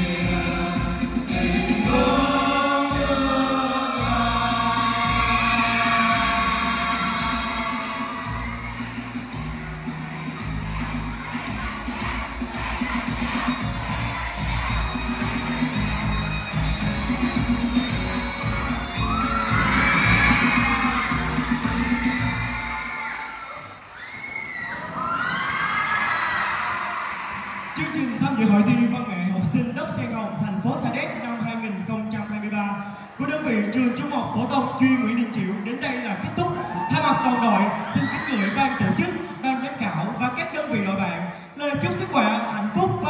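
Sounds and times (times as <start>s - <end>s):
group singing: 0.0s - 8.5s, 9.4s - 18.0s
backing track with steady beat: 0.0s - 23.0s
crowd cheering and shouting: 0.0s - 43.0s.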